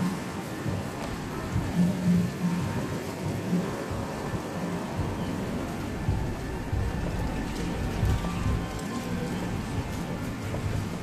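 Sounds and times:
city and vehicle hum: 0.0s - 11.0s.

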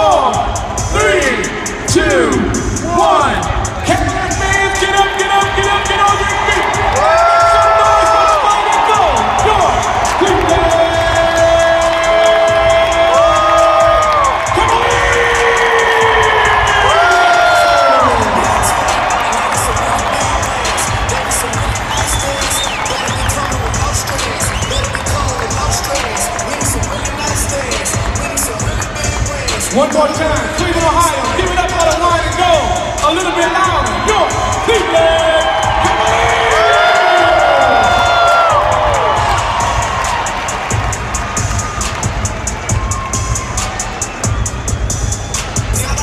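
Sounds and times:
crowd cheering: 0.0s - 46.0s
music over loudspeakers: 0.0s - 46.0s.

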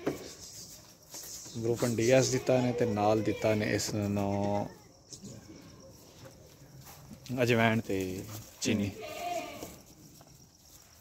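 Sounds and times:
goat bleating: 1.9s - 3.9s, 8.6s - 9.9s.

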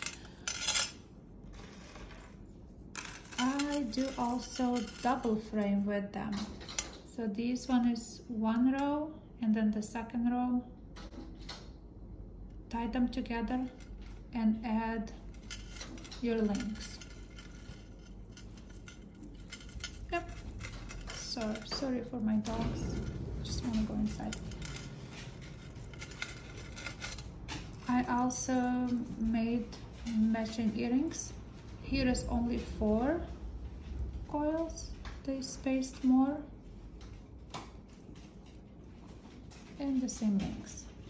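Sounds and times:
metal jump rings and chain clinking: 1.6s - 5.6s, 15.0s - 31.3s
metal necklace jingling on stone: 15.2s - 29.2s.

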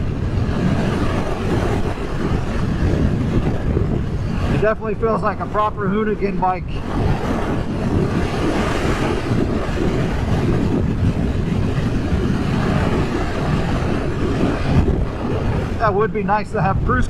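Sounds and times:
wind noise on microphone: 0.0s - 17.0s.

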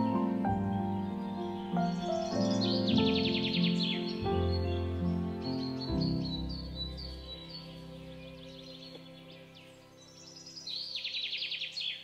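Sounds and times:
bird chirps: 0.0s - 12.0s
soft music of held chords: 0.0s - 12.0s.

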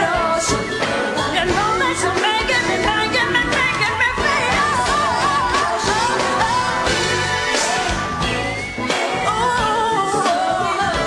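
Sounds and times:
female singer's lead vocal: 0.0s - 11.0s
live pop band music: 0.0s - 11.0s.

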